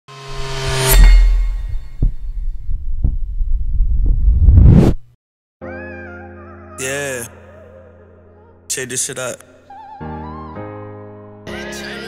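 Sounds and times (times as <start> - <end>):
low rumble: 0.3 - 5.0
deep bass thumps: 1.3 - 5.0.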